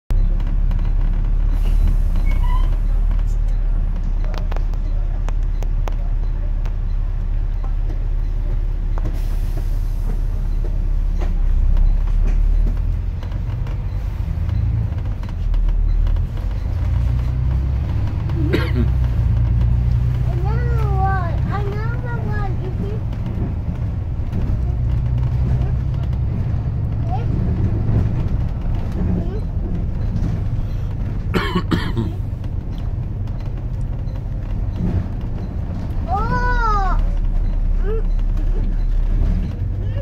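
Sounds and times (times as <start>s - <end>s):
bus engine and road rumble: 0.1s - 40.0s
bodywork rattles and clicks: 10.0s - 40.0s.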